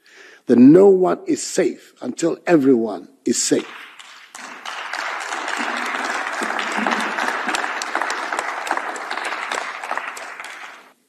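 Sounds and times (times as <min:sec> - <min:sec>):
audience applauding: 0:03.6 - 0:11.0.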